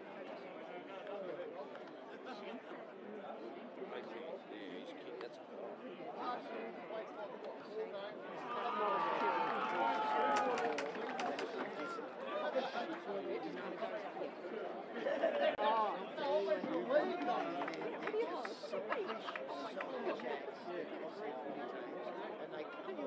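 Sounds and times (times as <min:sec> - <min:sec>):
people talking and calling out: 0:00.0 - 0:23.0.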